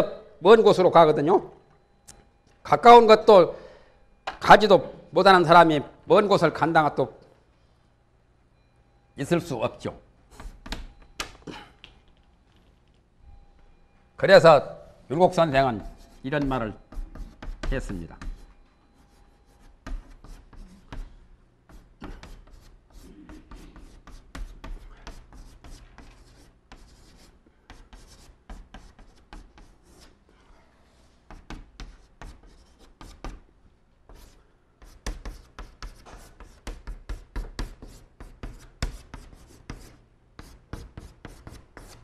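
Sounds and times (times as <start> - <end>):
chalk writing on blackboard: 10.3 - 10.9, 15.7 - 30.2, 31.0 - 33.4, 34.1 - 42.0.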